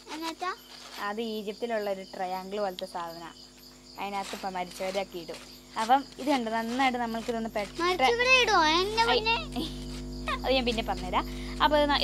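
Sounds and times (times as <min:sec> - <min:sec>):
crickets chirring: 0:00.0 - 0:12.0
person's wavering voice: 0:08.0 - 0:09.7.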